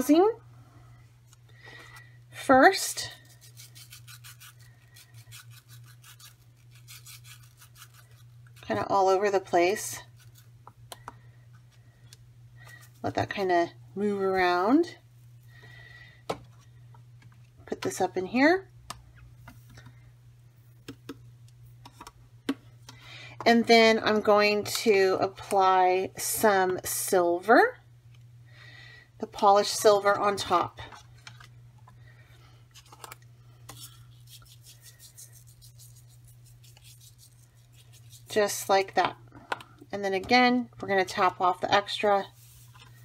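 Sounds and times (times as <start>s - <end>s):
low steady hum: 0.0s - 43.0s
powder shaken from a jar: 33.7s - 38.6s.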